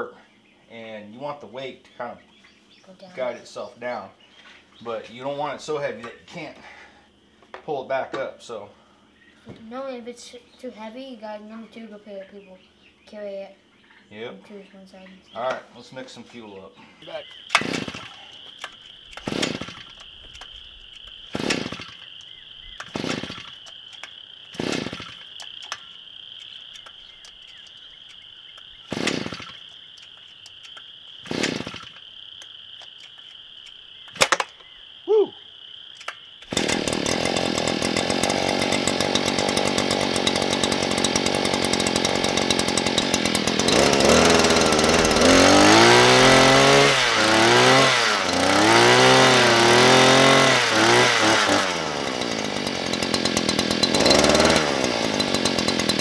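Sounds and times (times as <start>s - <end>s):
two-stroke engine revving: 17.0s - 20.0s, 21.3s - 22.1s, 22.7s - 23.7s, 24.5s - 25.8s, 28.8s - 29.7s, 31.2s - 32.0s, 36.4s - 56.0s.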